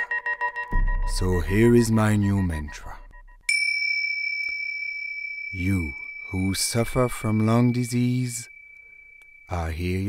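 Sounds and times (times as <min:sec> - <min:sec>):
high bell-like synth tone: 0:00.0 - 0:10.0.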